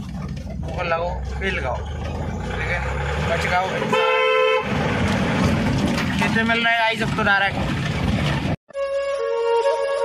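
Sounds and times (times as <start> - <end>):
vehicle engine and road noise: 0.0 - 8.6
vehicle horn toot: 3.8 - 4.7.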